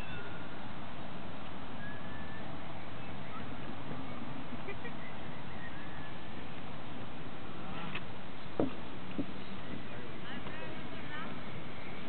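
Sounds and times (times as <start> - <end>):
birds whistling: 1.8 - 4.2, 4.8 - 6.2.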